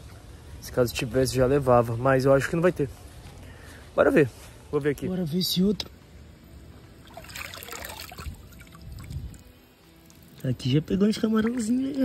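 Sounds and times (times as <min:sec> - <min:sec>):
water trickling and splashing off trap: 0:07.0 - 0:10.5.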